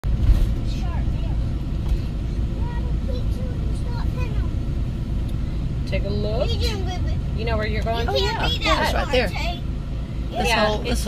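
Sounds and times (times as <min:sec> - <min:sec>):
car driving rumble inside cabin: 0:00.0 - 0:11.0.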